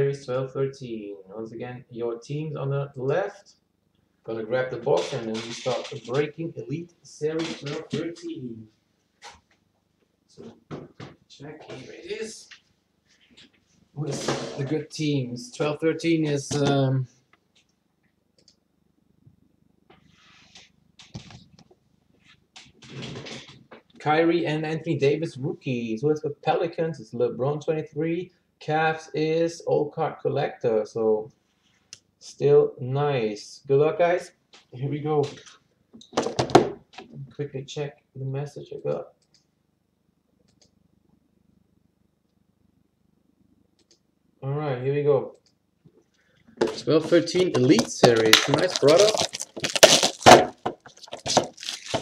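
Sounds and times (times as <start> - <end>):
shrink wrap crinkling: 46.7 - 52.0.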